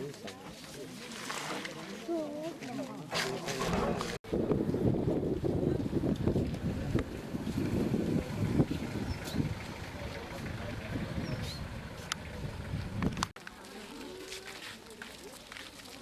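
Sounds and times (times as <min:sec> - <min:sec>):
indistinct crowd voices: 0:00.0 - 0:04.2
wind buffeting microphone: 0:04.2 - 0:13.3.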